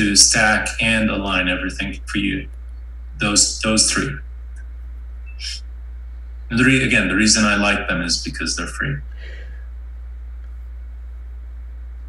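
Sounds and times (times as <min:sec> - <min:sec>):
steady low hum: 0:00.0 - 0:12.0
spoken word: 0:05.4 - 0:05.6
brief breath hiss: 0:09.1 - 0:09.7.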